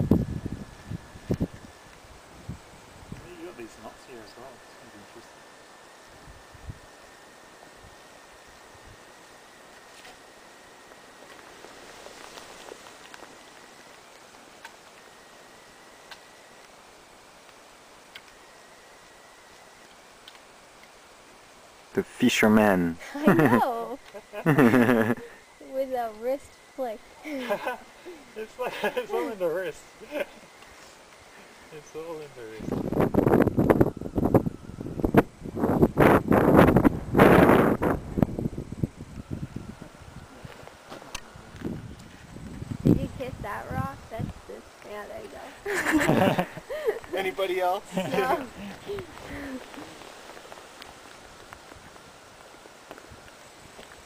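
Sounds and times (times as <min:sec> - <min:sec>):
wind buffeting microphone: 0:00.0 - 0:03.3, 0:32.6 - 0:44.7
soft steady hiss: 0:00.0 - 0:54.0.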